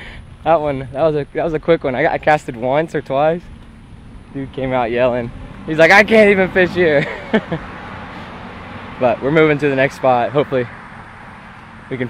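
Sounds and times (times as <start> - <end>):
low outdoor background noise: 0.0 - 12.0
man laughing: 6.7 - 7.8.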